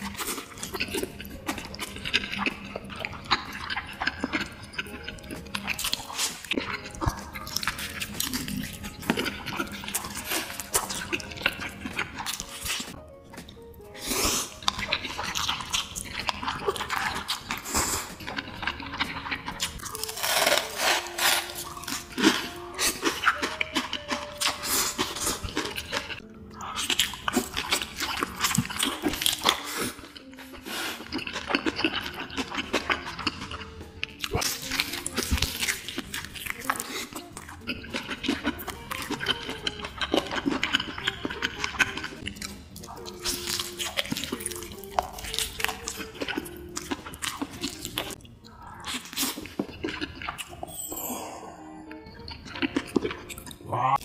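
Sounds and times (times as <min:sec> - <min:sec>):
background music: 0:00.0 - 0:54.0
man chewing and slurping: 0:00.0 - 0:54.0.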